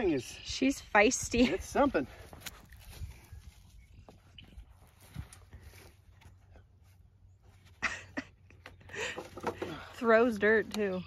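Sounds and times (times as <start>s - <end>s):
garden cultivator humming: 4.1s - 11.0s.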